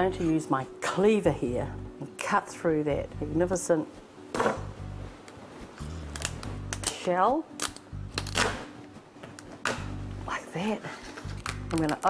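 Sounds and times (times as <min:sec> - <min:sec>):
background music with bass: 0:04.4 - 0:05.2, 0:05.8 - 0:06.9, 0:07.8 - 0:08.7.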